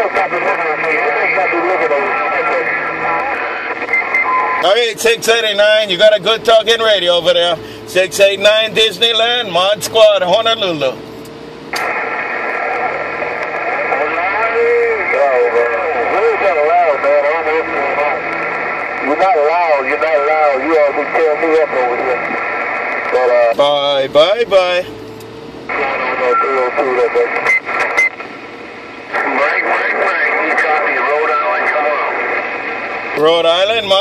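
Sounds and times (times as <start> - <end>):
radio static hiss: 0.0 - 11.0, 11.6 - 24.9, 25.7 - 34.0
voice over radio speaker: 0.0 - 11.0, 11.8 - 24.9, 25.7 - 28.0, 29.1 - 34.0.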